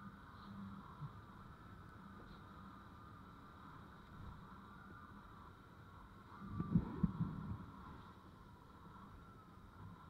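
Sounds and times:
wind on microphone: 6.4s - 8.0s.

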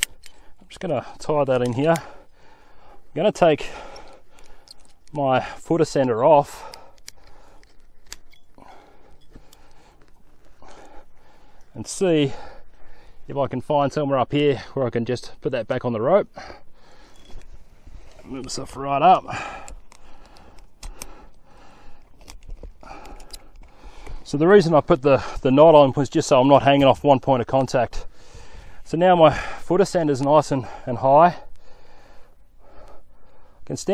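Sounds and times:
climbing gear clicking on rope: 0.0s - 2.4s, 3.3s - 11.8s, 16.9s - 25.5s.

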